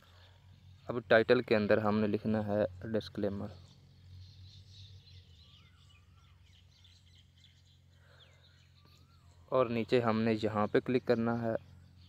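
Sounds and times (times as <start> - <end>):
faint birds chirping: 0.0 - 12.0
low steady hum: 0.0 - 12.0.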